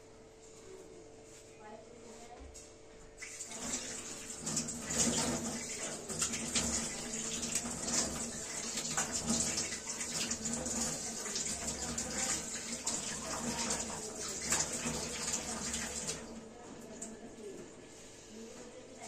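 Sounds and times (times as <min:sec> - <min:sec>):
water splashing on face: 0:03.2 - 0:16.3
tap water running into sink: 0:03.2 - 0:17.1.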